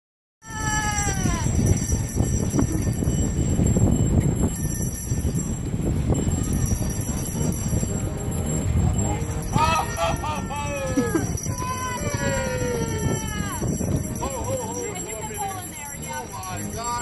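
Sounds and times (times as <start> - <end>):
harness bells jangling: 0.5 - 17.0.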